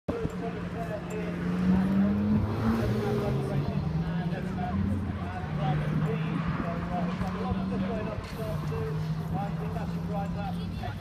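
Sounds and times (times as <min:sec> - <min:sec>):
people talking: 0:00.1 - 0:11.0.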